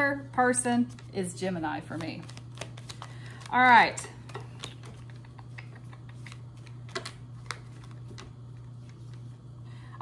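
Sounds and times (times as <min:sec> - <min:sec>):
steady low hum: 0:00.0 - 0:10.0
cards clicking and tapping: 0:01.9 - 0:03.5, 0:04.2 - 0:09.0.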